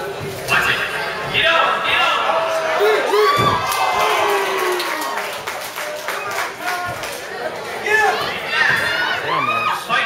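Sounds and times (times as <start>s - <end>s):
crowd shouting and cheering: 0.8s - 10.0s.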